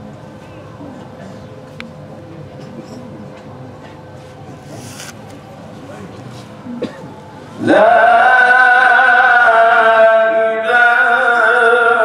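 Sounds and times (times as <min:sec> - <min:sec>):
indistinct background murmur: 0:00.0 - 0:09.8
brief rustle: 0:04.8 - 0:05.4.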